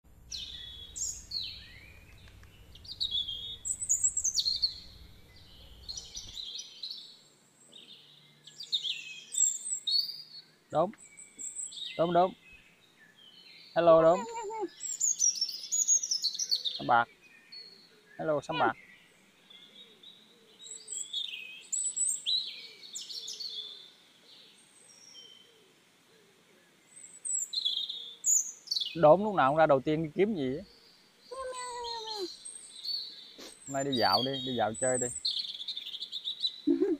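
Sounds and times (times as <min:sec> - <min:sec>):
low rumble: 0:00.1 - 0:06.3
small birds chirping: 0:00.1 - 0:36.9.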